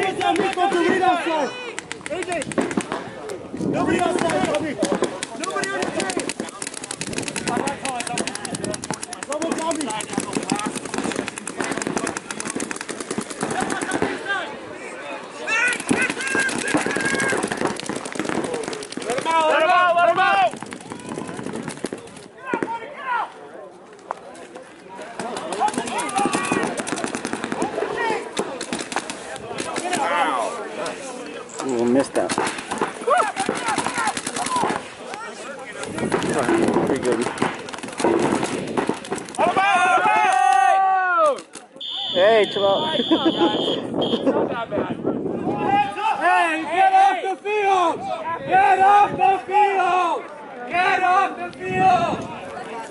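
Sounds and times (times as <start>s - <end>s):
paintball markers firing: 0.0s - 1.0s, 1.7s - 14.2s, 15.6s - 19.7s, 20.4s - 22.8s, 25.1s - 31.0s, 32.0s - 35.2s, 35.8s - 40.7s
players shouting: 0.0s - 3.1s, 3.7s - 23.4s, 25.0s - 44.3s, 45.4s - 52.8s.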